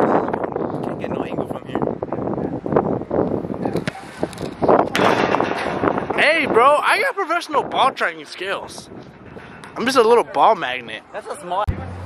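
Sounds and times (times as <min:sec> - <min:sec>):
wind rumbling on microphone: 0:00.0 - 0:11.1
sharp thumps: 0:03.7 - 0:06.2.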